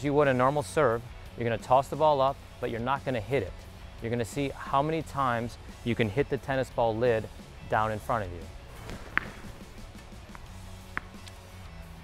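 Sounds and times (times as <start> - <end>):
quiet background music: 0.0 - 12.0
tennis ball tapping lid: 8.7 - 11.4.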